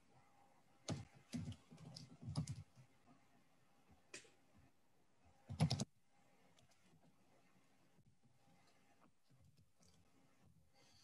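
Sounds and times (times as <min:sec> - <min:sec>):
computer keyboard typing: 0:00.9 - 0:02.7, 0:05.5 - 0:05.9.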